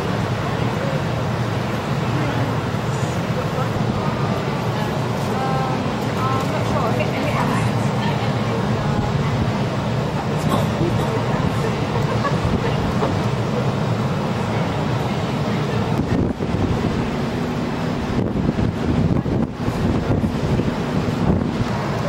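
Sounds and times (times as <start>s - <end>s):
steady background rumble: 0.0s - 22.0s
wind buffeting microphone: 0.0s - 22.0s.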